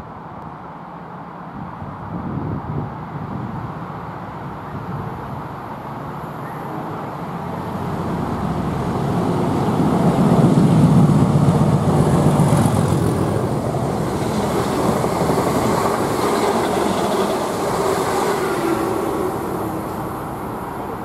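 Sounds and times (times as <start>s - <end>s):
train cars running on rails: 3.9s - 21.0s
diesel locomotive engine working hard: 4.1s - 21.0s.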